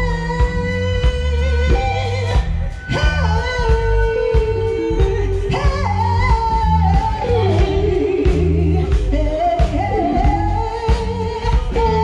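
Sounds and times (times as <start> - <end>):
drum kit: 0.0 - 12.0
electric guitars: 0.0 - 12.0
kick drum and bass beat: 0.0 - 12.0
woman singing: 0.0 - 12.0.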